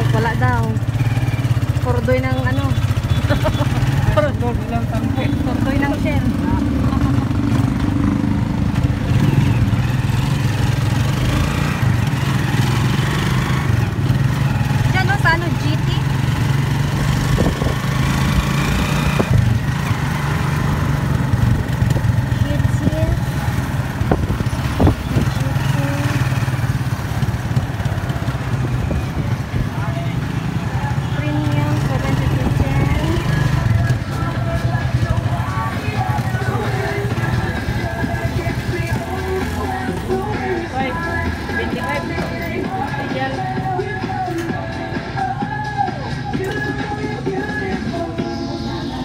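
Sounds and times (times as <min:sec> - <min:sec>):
voices: 0:00.0 - 0:20.3, 0:21.0 - 0:49.0
small motorcycle engine running: 0:00.0 - 0:43.5
street traffic: 0:00.0 - 0:49.0
music: 0:33.1 - 0:49.0.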